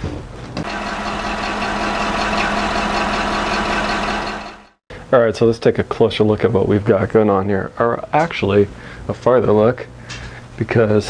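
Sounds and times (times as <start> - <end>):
motor humming: 0.6 - 4.8.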